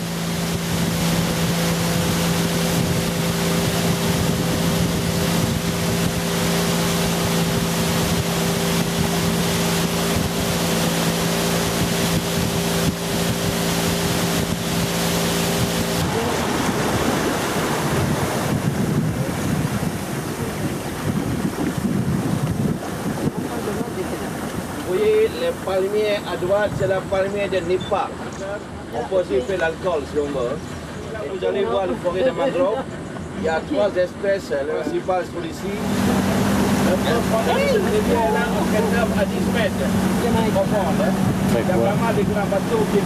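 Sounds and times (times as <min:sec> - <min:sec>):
wind on microphone: 0:00.0 - 0:27.4, 0:35.8 - 0:43.0
motorboat engine humming: 0:00.0 - 0:43.0
rushing water: 0:00.0 - 0:43.0.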